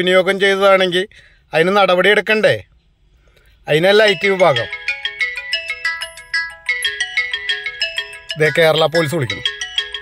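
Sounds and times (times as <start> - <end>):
smartphone ringtone melody: 3.9 - 10.0.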